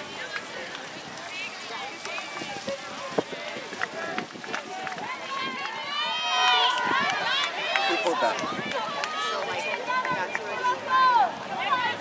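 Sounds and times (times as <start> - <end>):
people shouting and calling out: 1.3 - 12.0.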